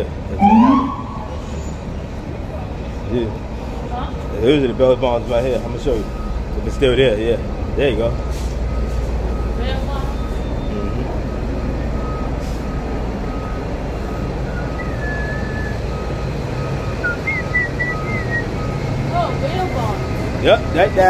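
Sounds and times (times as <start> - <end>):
city traffic rumble: 0.0 - 21.0
vehicle reversing beeper: 0.0 - 21.0
high warbling tones: 0.4 - 1.8.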